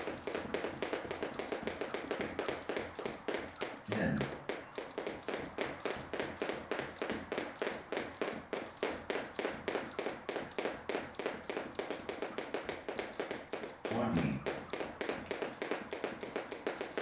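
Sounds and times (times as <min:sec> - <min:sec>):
jump ropes ticking on floor: 0:00.0 - 0:17.0
light foot landings: 0:00.0 - 0:17.0.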